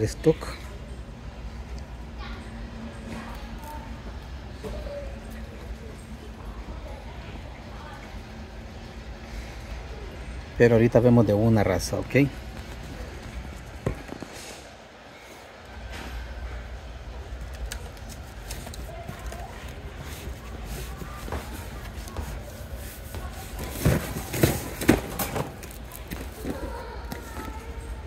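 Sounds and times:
low store background hum: 0.0 - 28.0.

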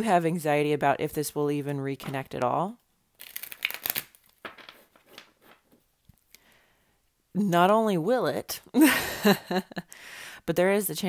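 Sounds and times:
cards rustling and clicking: 3.2 - 6.4.

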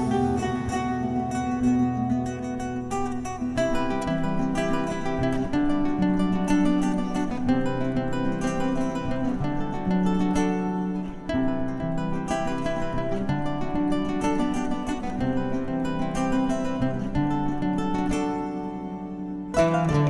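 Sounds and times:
fingerstyle classical guitar: 0.0 - 20.0.

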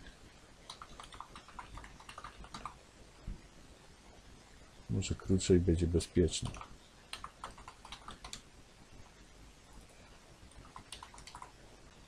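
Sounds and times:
faint keyboard typing: 0.6 - 2.8, 6.4 - 8.5, 9.8 - 12.0.

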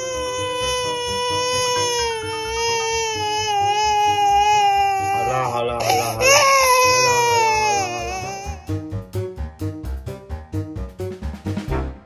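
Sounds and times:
baby crying: 0.0 - 8.8.

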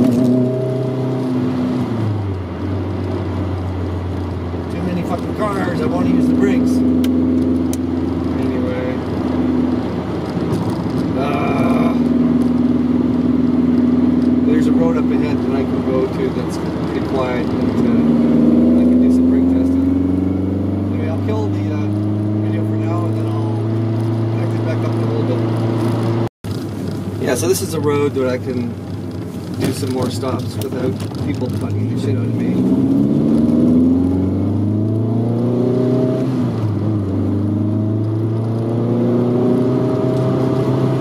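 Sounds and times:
car engine and exhaust while driving: 0.0 - 41.0.

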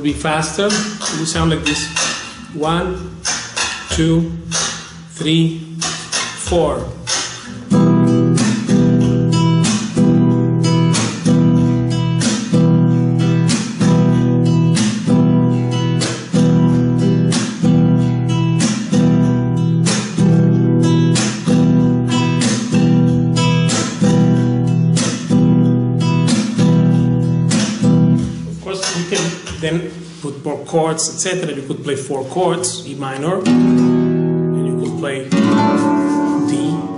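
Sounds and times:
flamenco guitar strumming: 0.0 - 30.2, 32.5 - 36.9.

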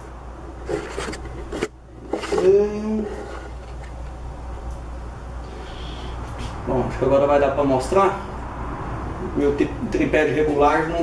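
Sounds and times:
steady low hum: 0.0 - 11.0
camera handling rustles: 0.7 - 2.5.

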